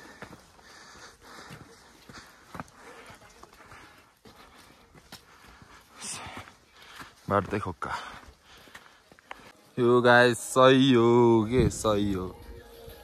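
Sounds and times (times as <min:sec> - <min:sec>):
footsteps on stone path: 0:00.0 - 0:13.0.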